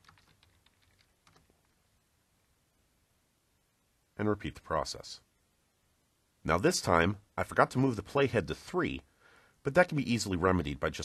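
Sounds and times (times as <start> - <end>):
computer keyboard typing: 0.0 - 1.6.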